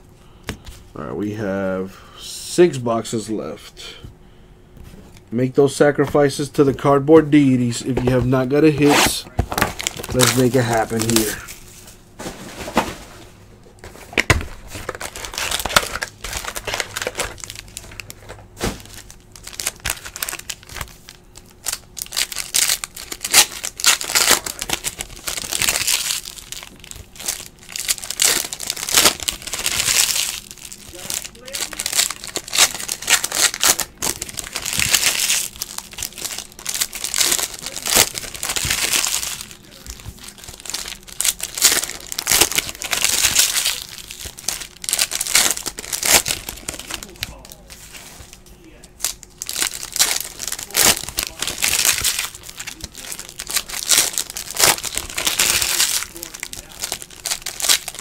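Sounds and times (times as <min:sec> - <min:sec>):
card wrappers crinkling: 0:07.3 - 0:13.0, 0:13.8 - 0:58.0.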